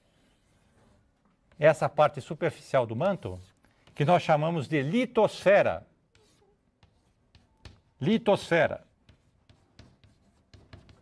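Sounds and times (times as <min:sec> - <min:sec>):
chalk tapping and scratching: 0:00.0 - 0:04.6, 0:05.2 - 0:11.0.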